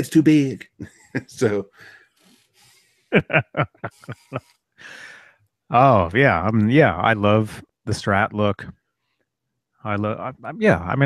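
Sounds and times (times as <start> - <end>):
man laughing: 0.3 - 1.9, 3.1 - 5.2
breath: 1.7 - 3.1, 4.8 - 5.5.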